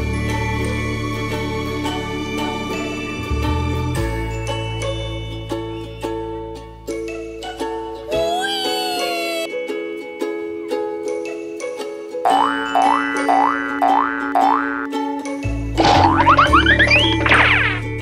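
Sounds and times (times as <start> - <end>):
music of held notes: 0.0 - 18.0.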